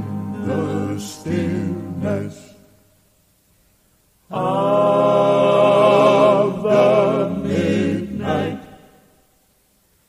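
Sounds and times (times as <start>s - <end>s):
male quartet singing in close harmony: 0.0s - 2.8s, 4.3s - 9.1s.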